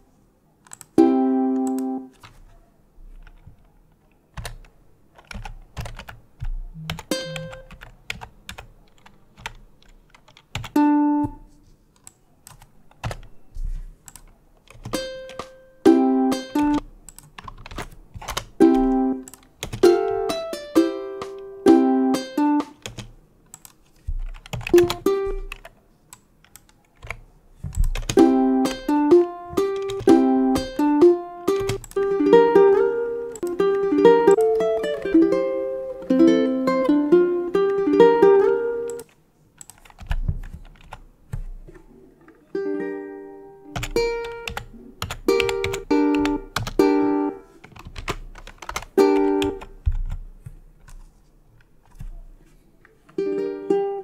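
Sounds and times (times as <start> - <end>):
computer keyboard clicks: 0.6 - 1.0, 3.2 - 10.8, 12.0 - 13.3, 14.0 - 15.6, 16.6 - 19.9, 22.6 - 28.2, 31.6 - 32.0, 38.8 - 41.5, 43.8 - 46.8, 47.6 - 51.0
ukulele fingerstyle phrases: 1.0 - 2.2, 6.6 - 7.7, 10.7 - 11.7, 14.9 - 16.8, 18.5 - 22.8, 24.7 - 25.5, 27.6 - 39.0, 41.5 - 47.6, 48.9 - 49.9, 52.0 - 54.0.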